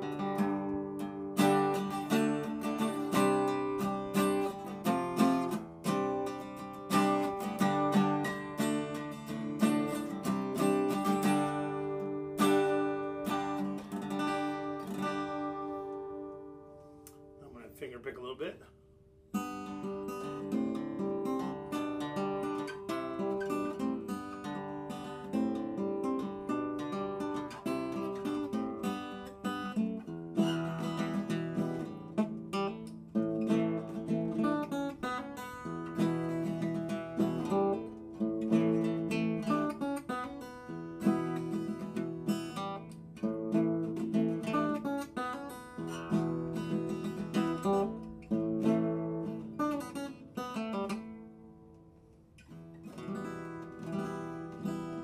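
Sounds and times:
acoustic guitar fingerpicked: 0.0 - 55.0.

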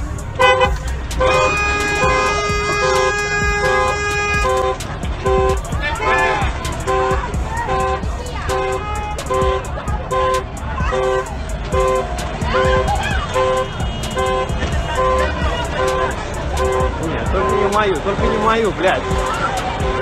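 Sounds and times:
car horn beeping: 0.0 - 20.0
street traffic noise: 0.0 - 20.0.

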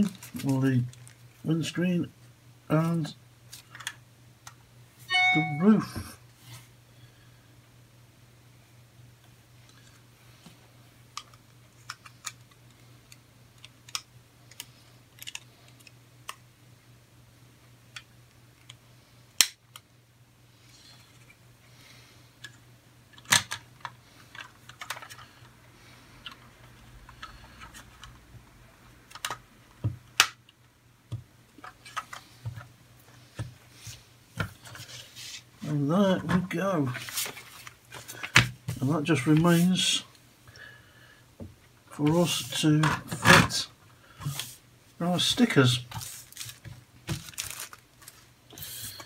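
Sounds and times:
plastic parts snapping together: 19.4 - 19.8, 23.1 - 23.6, 29.1 - 29.4.

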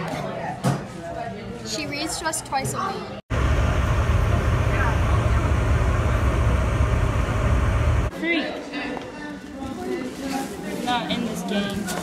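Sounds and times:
vehicle rumble from inside cabin: 3.3 - 8.1.

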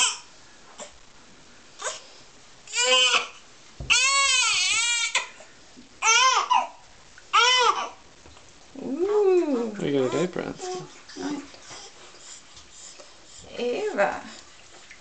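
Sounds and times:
newborn baby crying: 0.0 - 0.9, 2.7 - 5.4, 6.0 - 8.0, 9.8 - 12.0.

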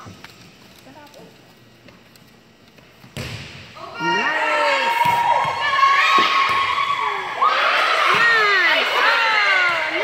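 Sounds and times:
volleyball struck: 3.0 - 3.8, 4.9 - 6.8.

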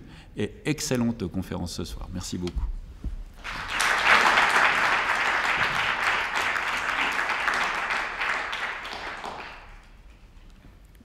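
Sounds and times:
audience applauding: 3.4 - 10.3.

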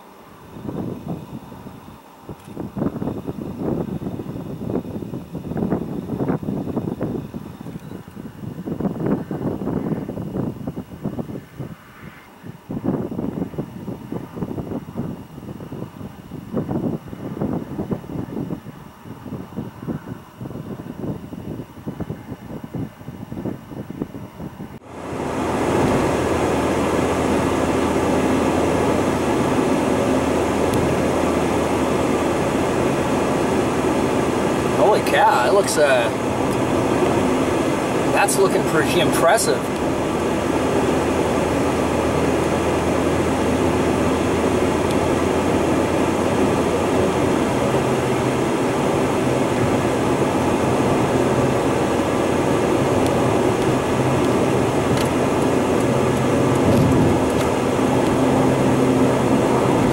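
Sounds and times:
car road and engine noise: 0.0 - 59.9
uneven rumbling: 24.6 - 59.9.

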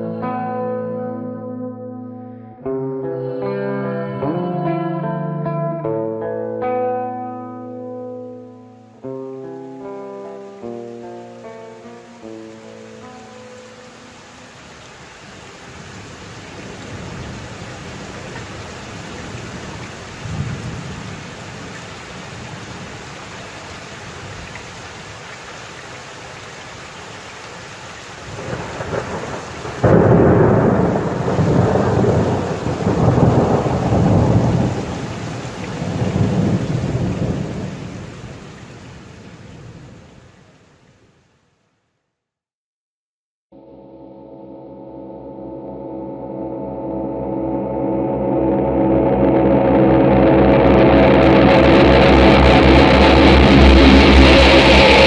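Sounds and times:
clean guitar notes: 0.0 - 14.0, 43.6 - 55.0
steady rain: 8.8 - 41.4, 48.5 - 55.0
loud thunderclap: 28.3 - 38.1, 50.5 - 55.0
rolling thunder: 28.3 - 38.5, 49.6 - 55.0.

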